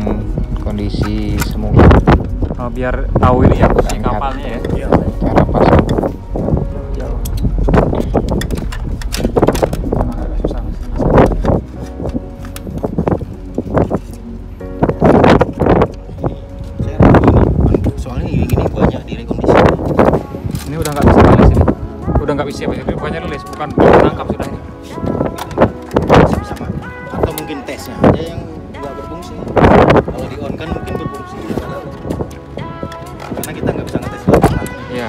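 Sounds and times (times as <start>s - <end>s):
background music: 0.0s - 35.0s
wind rumble on microphone: 0.0s - 35.0s
plastic device clicks and knocks: 7.2s - 9.9s.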